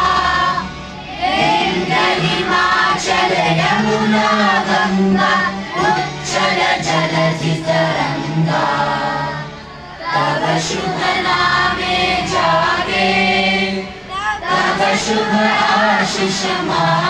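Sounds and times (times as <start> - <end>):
children singing in unison: 0.0 - 17.0.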